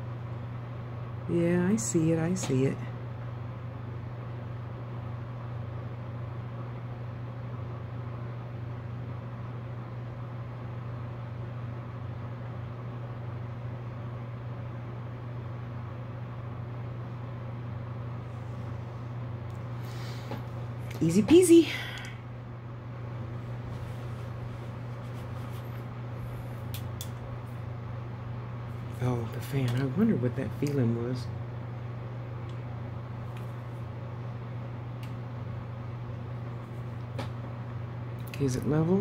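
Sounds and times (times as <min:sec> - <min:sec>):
electric fan humming: 0:00.0 - 0:39.0.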